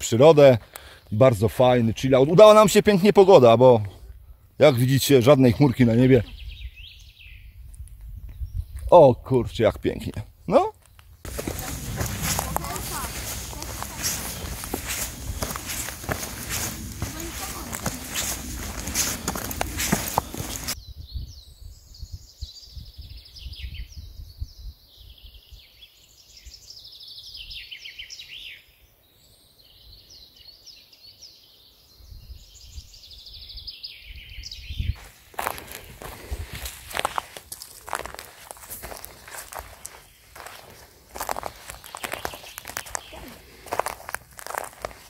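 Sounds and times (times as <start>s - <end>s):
songbirds chirping and warbling: 0.0s - 45.0s
footsteps crunching on forest floor: 10.8s - 20.8s, 34.9s - 45.0s.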